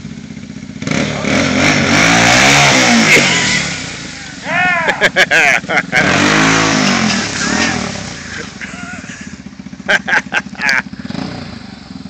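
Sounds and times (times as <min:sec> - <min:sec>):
atv engine revving down to idle: 0:00.0 - 0:12.0.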